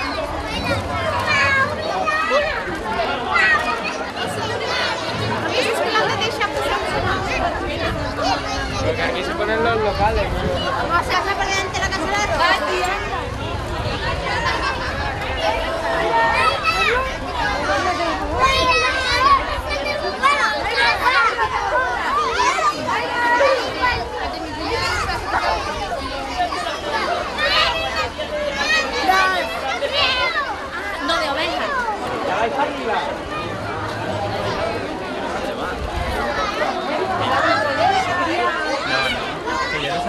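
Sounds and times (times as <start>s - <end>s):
young children chattering: 0.0s - 40.0s.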